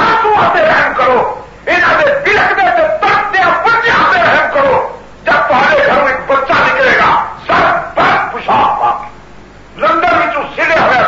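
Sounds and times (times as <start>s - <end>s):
man's voice in loud bursts: 0.0s - 9.2s, 9.8s - 11.0s.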